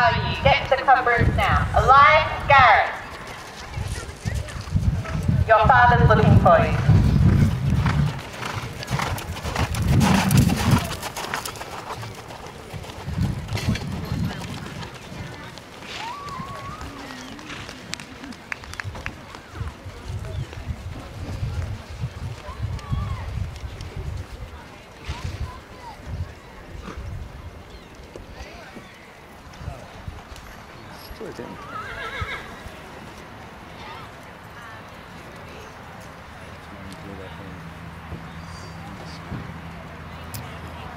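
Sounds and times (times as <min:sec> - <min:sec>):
horse cantering on sand: 0:00.1 - 0:36.6
horse whinnying: 0:31.6 - 0:32.6.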